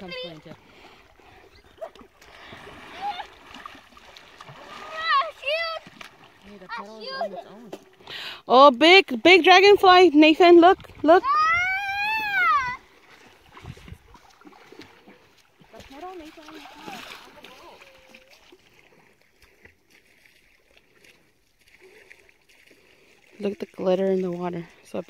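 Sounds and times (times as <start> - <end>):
light water splashing: 0.0 - 25.0
woman exclaiming: 11.1 - 12.8.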